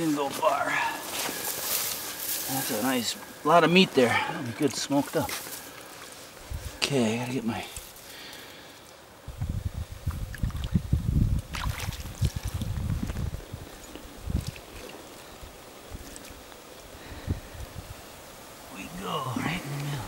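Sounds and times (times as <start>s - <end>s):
water sloshing and splashing: 11.5s - 12.8s.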